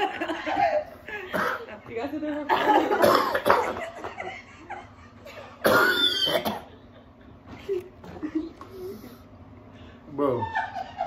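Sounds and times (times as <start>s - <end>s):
man coughing hard: 1.3s - 1.7s, 2.9s - 3.8s, 5.6s - 6.8s.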